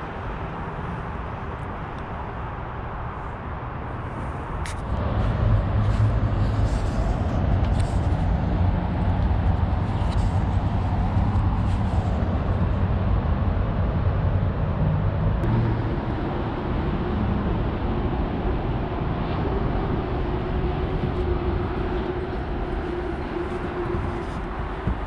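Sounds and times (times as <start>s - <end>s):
highway traffic rumble: 0.0s - 25.0s
steady hum: 2.2s - 25.0s.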